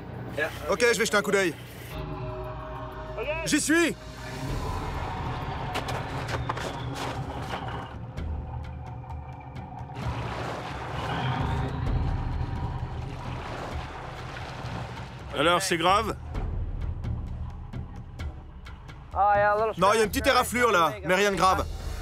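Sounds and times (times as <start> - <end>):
background music: 0.0 - 22.0
boat engine rumble: 0.0 - 22.0.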